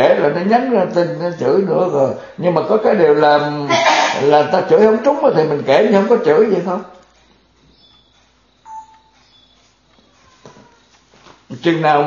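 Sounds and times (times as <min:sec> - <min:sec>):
faint room hiss: 0:00.0 - 0:12.0
short electronic beep: 0:08.6 - 0:09.2.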